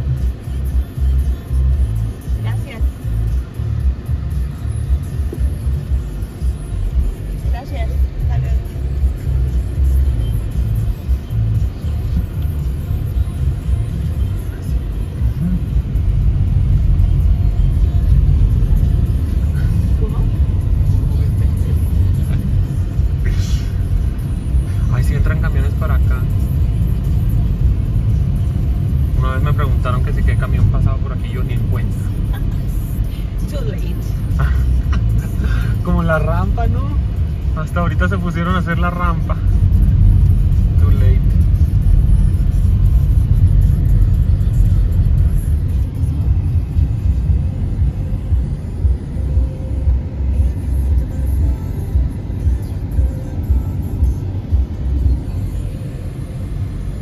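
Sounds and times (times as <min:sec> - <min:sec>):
car driving rumble: 0:00.0 - 0:57.0.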